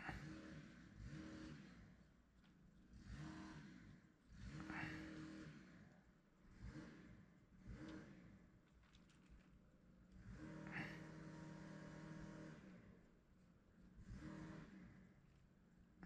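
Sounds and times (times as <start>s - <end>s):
small petrol engine revving: 0.0s - 2.1s, 2.9s - 8.6s, 10.0s - 13.1s, 13.9s - 15.2s.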